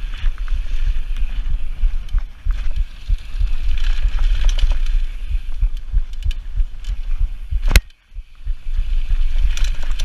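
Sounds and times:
bike clicks and rattles: 0:00.0 - 0:10.0
wind buffeting microphone: 0:00.0 - 0:10.0.

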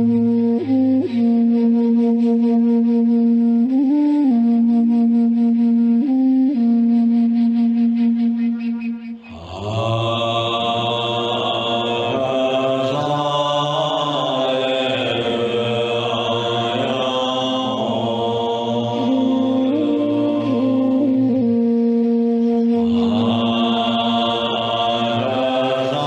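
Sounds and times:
man chanting: 0:09.3 - 0:21.4, 0:22.8 - 0:26.0.

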